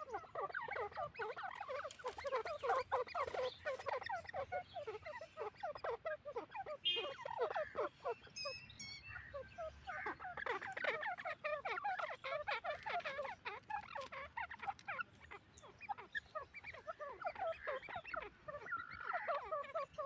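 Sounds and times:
francolins calling: 0.0s - 20.0s.

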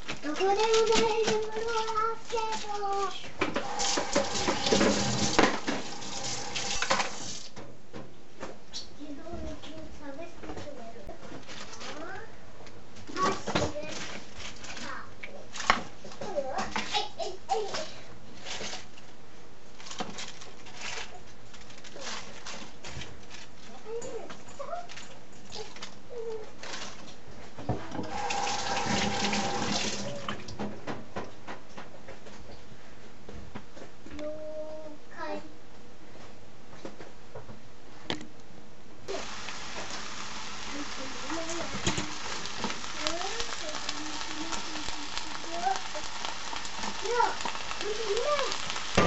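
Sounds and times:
cabbage sizzling in a pan: 0.4s - 7.5s, 13.1s - 15.9s, 27.9s - 30.4s, 39.1s - 49.0s.

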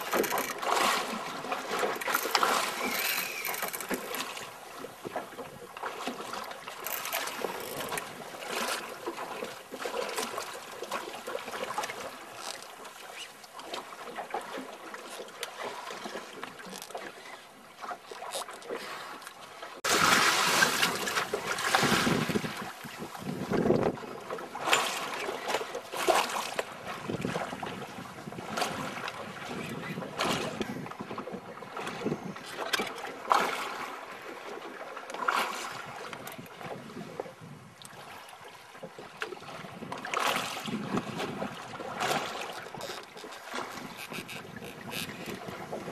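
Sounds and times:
water slapping boat hull: 0.0s - 45.9s
wind on microphone: 19.9s - 24.2s, 26.8s - 32.5s, 35.7s - 37.8s, 39.4s - 45.9s.

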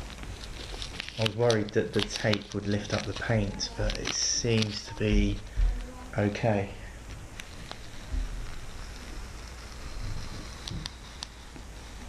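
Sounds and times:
masking tape peeling: 0.0s - 12.0s.

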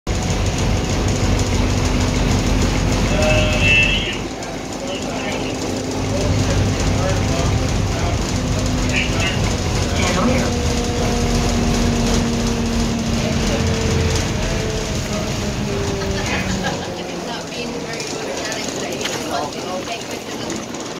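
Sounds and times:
bus engine and road rumble: 0.1s - 20.9s.

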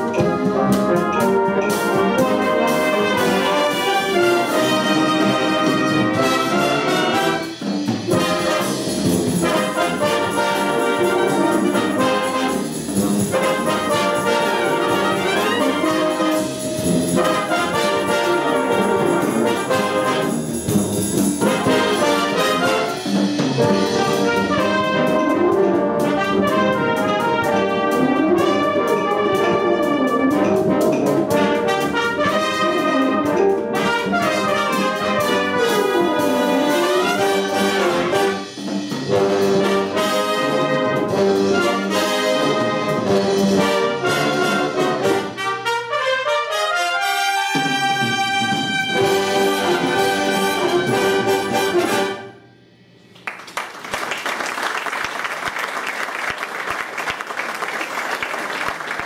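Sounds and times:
brass band playing: 0.0s - 59.0s
audience applauding: 53.2s - 59.0s.

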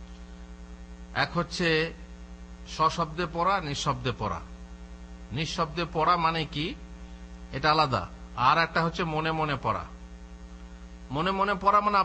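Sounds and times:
electrical mains hum: 0.0s - 12.0s
man speaking: 1.1s - 2.0s, 2.7s - 4.5s, 5.3s - 6.8s, 7.5s - 10.0s, 11.1s - 12.0s.

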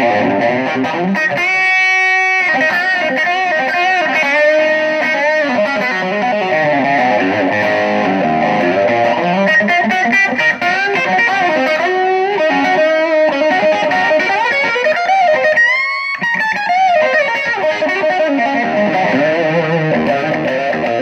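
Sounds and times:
overdriven electric guitar licks: 0.0s - 21.0s.

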